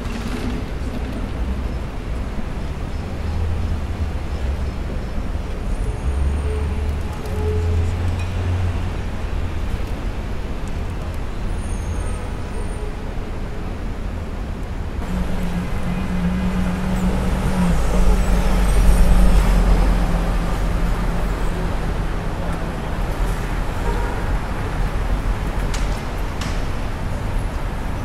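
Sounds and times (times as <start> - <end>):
city street traffic: 0.0 - 28.0
bus engine drone passing: 15.0 - 28.0.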